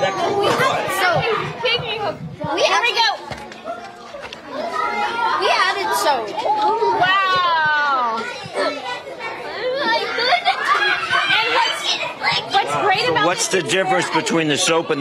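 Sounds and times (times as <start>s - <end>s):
excited children's voices: 0.0s - 15.0s.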